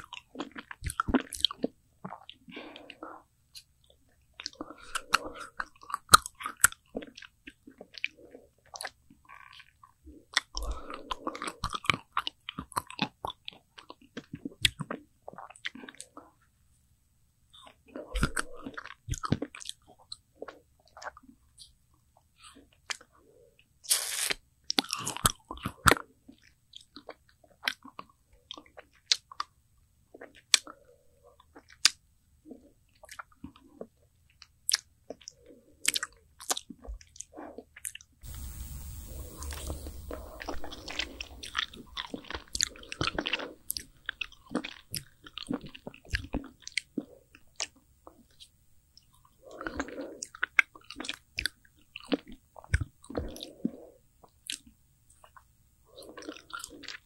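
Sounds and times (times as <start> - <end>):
biting and chewing ice cream: 0.0 - 16.5, 17.5 - 21.8, 22.4 - 57.0.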